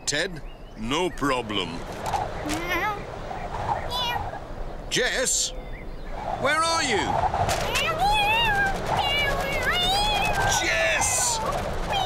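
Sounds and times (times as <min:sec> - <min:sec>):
cartoon cat meowing: 0:03.9 - 0:04.2.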